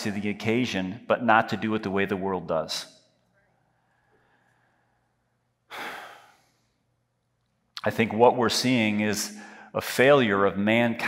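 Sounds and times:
man breathing: 3.9s - 6.9s, 9.3s - 9.8s.

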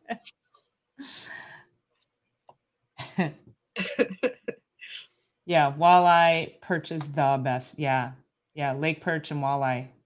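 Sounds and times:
woman laughing: 0.0s - 0.3s, 3.0s - 5.1s.

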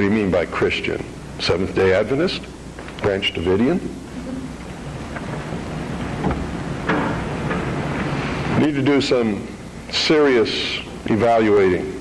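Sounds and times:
crowd noise: 3.9s - 6.2s.

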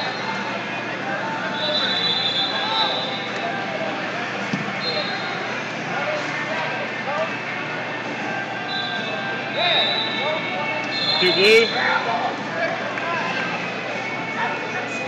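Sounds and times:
crowd talking and shouting: 0.0s - 15.0s.

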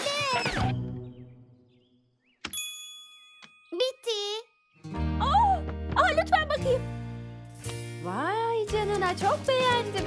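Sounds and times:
cartoon background music: 3.7s - 10.0s.

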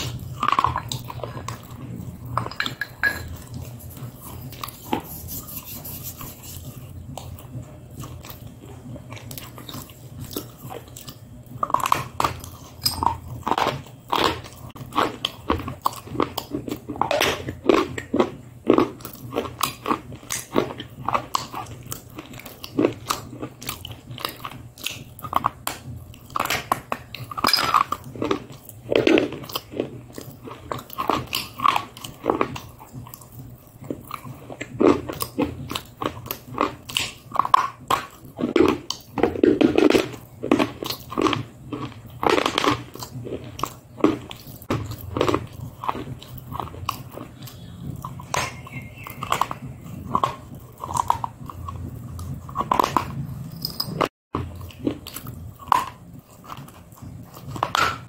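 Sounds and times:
chewing and mouth clicks: 0.0s - 58.0s.

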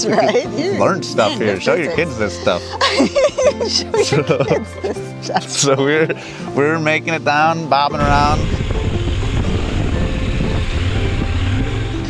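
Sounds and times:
wind noise on microphone: 7.9s - 12.0s
motorcycle engine rumble: 8.0s - 12.0s.

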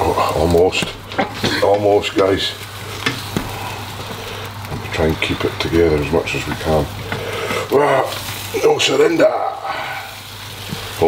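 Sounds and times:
omelette sizzling in a pan: 0.0s - 11.0s.

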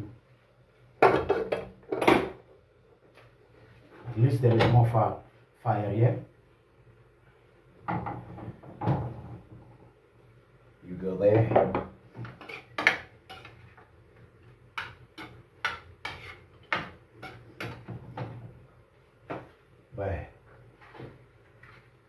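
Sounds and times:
metal spatula scraping frying pan: 12.2s - 13.7s, 14.8s - 17.9s.

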